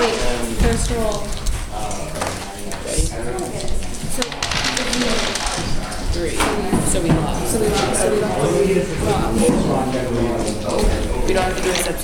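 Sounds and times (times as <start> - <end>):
students talking: 0.0 - 12.0.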